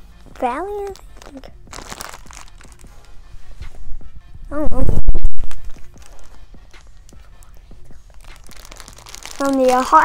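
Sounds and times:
plastic packaging crinkling: 0.4s - 3.1s, 5.4s - 6.4s, 8.1s - 10.0s.

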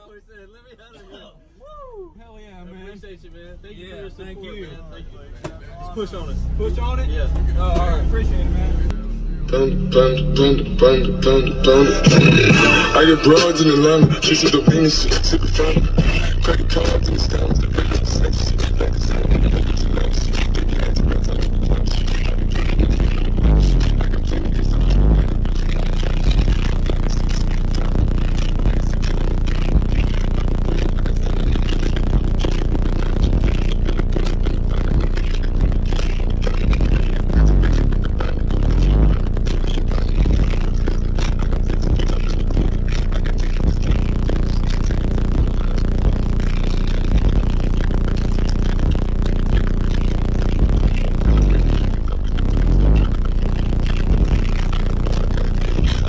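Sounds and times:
loud bass-heavy music from subwoofers: 5.8s - 56.0s.

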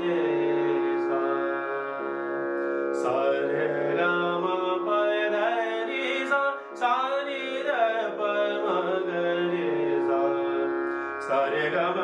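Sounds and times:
harmonium notes: 0.0s - 12.0s
man singing classical vocal: 0.0s - 12.0s.

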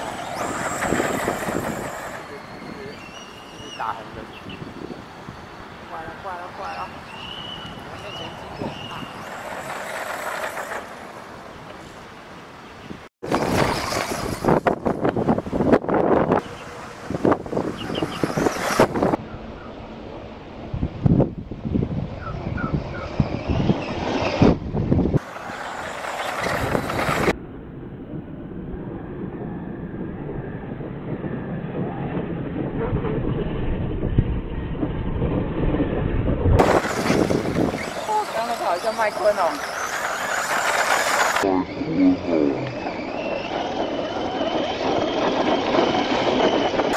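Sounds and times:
rc truck motor running: 0.0s - 2.8s, 25.2s - 27.3s, 36.6s - 41.5s, 42.1s - 46.9s.

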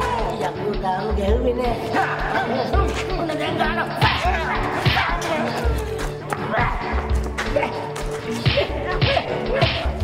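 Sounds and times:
background music: 0.0s - 10.0s
whip-like lashes: 8.3s - 10.0s.

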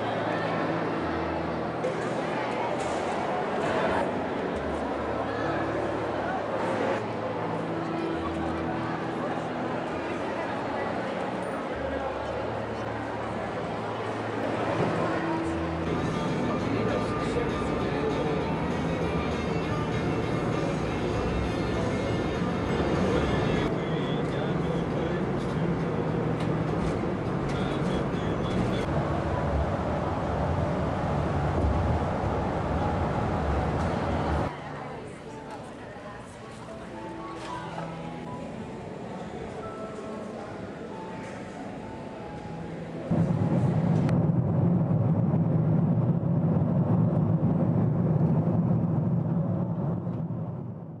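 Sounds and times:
coach engine and road rumble: 0.0s - 34.6s, 38.1s - 51.0s
jet airliner cabin rumble: 43.1s - 51.0s.

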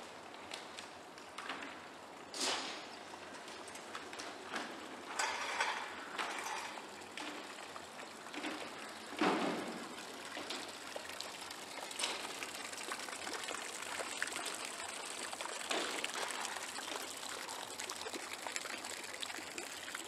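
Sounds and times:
fountain water trickling: 0.1s - 20.0s.

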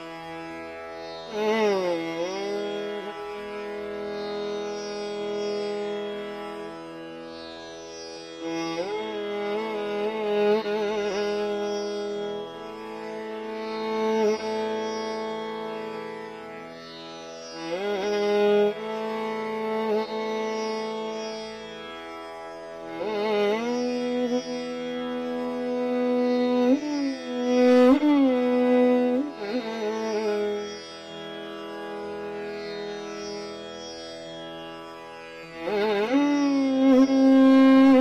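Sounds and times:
violin playing a raga: 0.0s - 38.0s.

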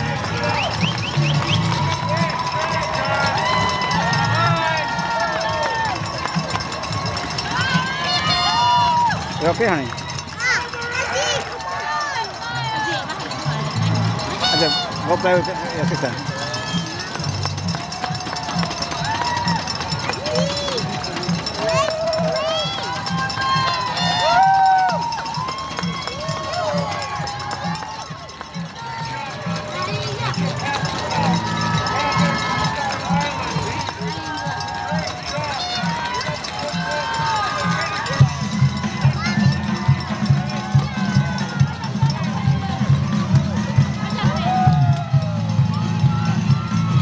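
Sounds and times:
crowd cheering and shouting: 0.0s - 47.0s.

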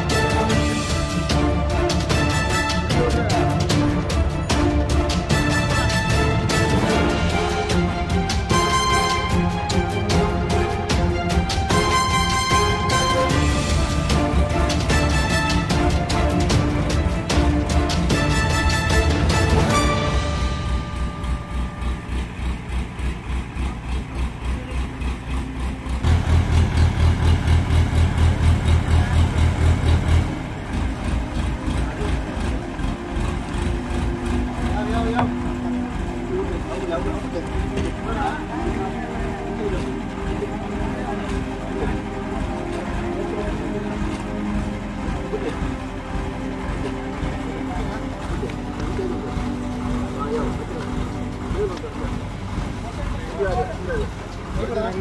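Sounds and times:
background music with steady beat: 0.0s - 55.0s
engine running: 0.0s - 55.0s.

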